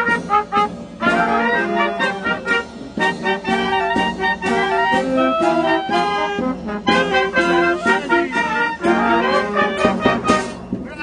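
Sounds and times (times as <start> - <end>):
brass band playing: 0.0 - 11.0
drum hits: 0.0 - 11.0.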